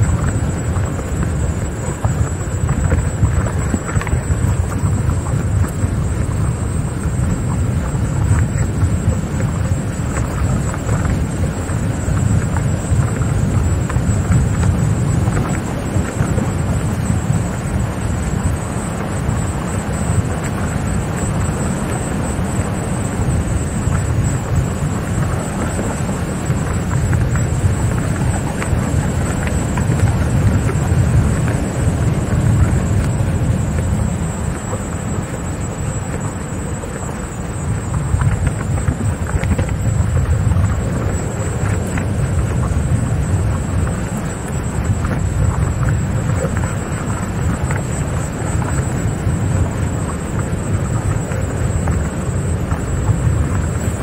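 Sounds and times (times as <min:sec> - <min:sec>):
thin high whine: 0:00.0 - 0:54.0
wind buffeting microphone: 0:00.0 - 0:54.0.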